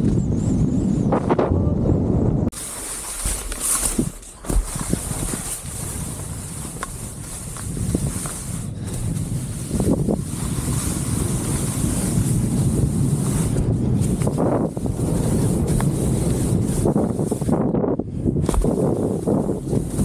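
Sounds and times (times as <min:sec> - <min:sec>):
wind rushing over microphone: 0:00.0 - 0:20.0
skis scraping on snow: 0:02.5 - 0:17.7, 0:18.4 - 0:20.0.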